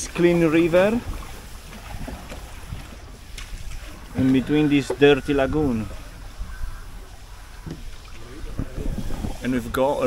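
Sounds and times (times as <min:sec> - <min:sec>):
wind rumble on microphone: 0:01.0 - 0:10.0
soft low boat knocks: 0:01.8 - 0:05.1, 0:07.5 - 0:09.3.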